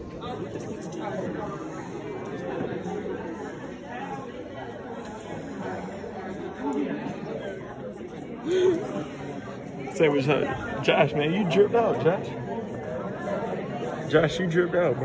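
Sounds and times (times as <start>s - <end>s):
chatter of many people: 0.0s - 15.0s.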